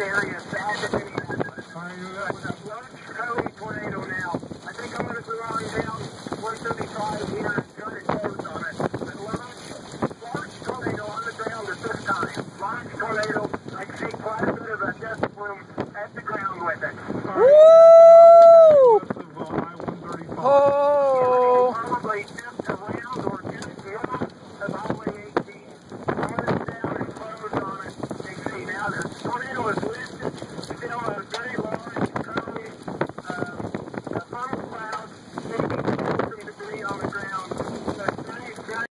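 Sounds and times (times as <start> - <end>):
wind: 0.0 - 38.9
excited voices talking: 16.2 - 19.2, 20.2 - 22.3
loud drawn-out shout: 17.4 - 19.0.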